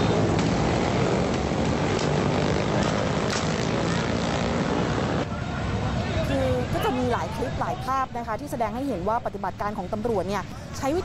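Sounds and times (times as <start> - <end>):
motorcycle engines running: 0.0 - 7.0
street din with voices: 5.2 - 11.0.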